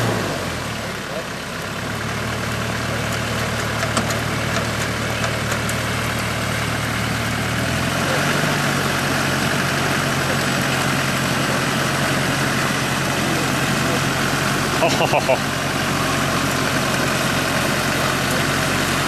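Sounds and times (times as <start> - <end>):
engine idling: 0.0 - 19.0.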